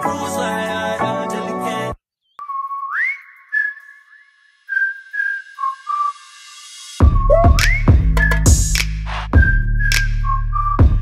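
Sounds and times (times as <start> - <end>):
echoing whistled melody: 2.4 - 8.8, 9.4 - 11.0.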